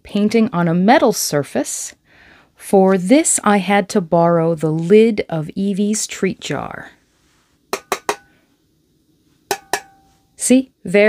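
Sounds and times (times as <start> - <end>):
metal jar lid tapping: 7.7 - 8.3, 9.5 - 10.2.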